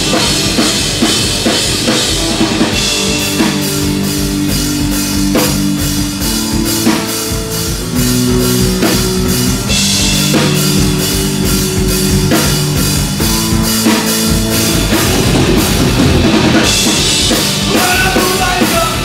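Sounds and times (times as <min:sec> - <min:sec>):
heavy rock band playing: 0:00.0 - 0:19.0.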